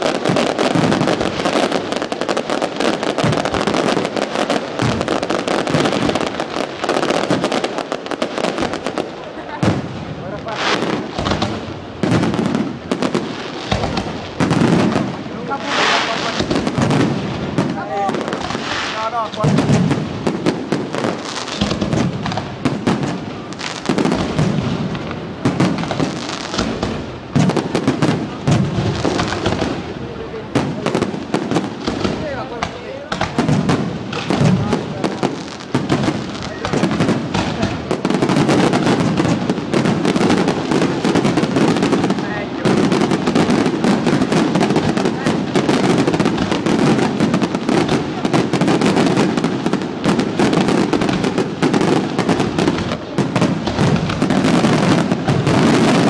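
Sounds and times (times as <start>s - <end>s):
fireworks bangs and crackling: 0.0s - 56.0s.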